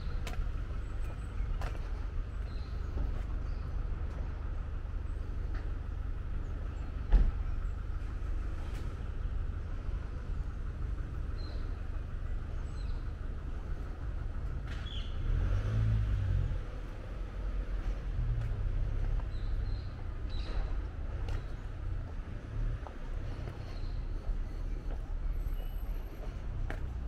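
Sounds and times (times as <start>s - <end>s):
road traffic rumble: 0.0s - 27.0s
vehicle passing close: 15.1s - 19.4s.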